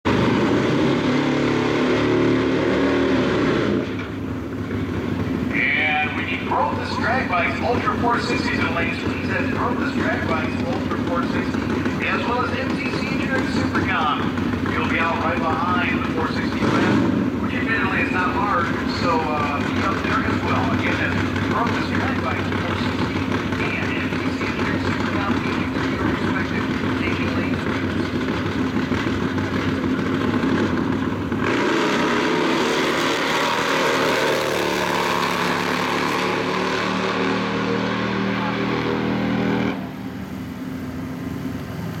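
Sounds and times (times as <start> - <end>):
drag motorcycle engine: 0.0 - 42.0.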